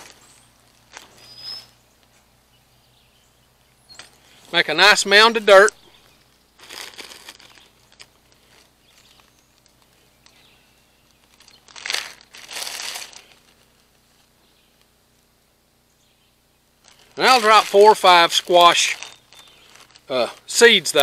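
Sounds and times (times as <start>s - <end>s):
crinkling rustling handling noise: 0.0s - 2.4s, 3.6s - 15.3s, 16.8s - 21.0s.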